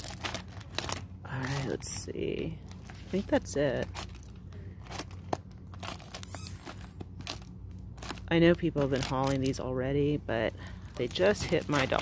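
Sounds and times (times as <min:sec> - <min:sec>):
cellophane crinkling: 0:00.0 - 0:01.3, 0:02.6 - 0:09.6, 0:10.7 - 0:12.0
steady low hum: 0:00.0 - 0:12.0.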